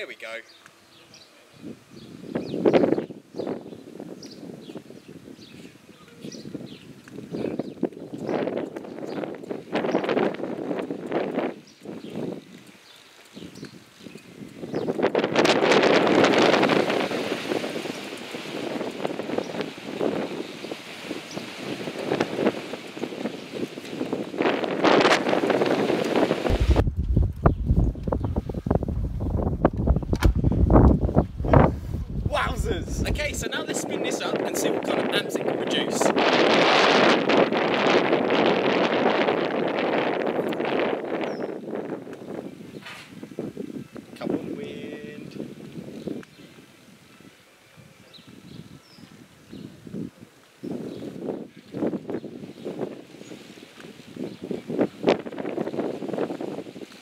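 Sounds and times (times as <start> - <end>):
low wind rumble on microphone: 0.8 - 57.0
wind buffeting microphone: 0.8 - 57.0.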